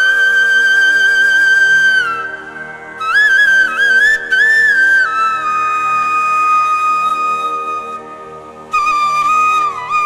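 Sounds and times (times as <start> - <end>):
flute-like melody: 0.0 - 10.0.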